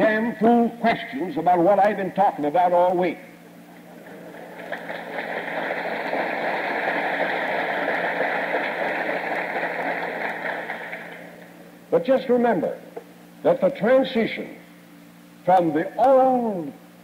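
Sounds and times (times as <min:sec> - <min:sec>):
audience applauding and laughing: 0:03.8 - 0:11.5.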